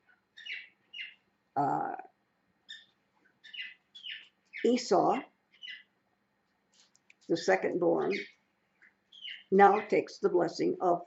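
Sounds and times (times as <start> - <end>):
parrots chirping: 0.0 - 1.3, 2.6 - 6.0, 6.7 - 10.3.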